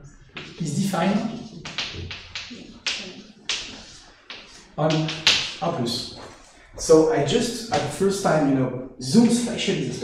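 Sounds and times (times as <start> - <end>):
chalk tapping on blackboard: 0.3 - 5.7.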